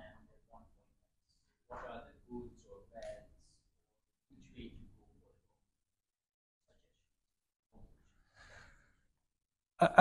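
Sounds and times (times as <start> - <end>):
faint short breath: 8.2 - 9.0.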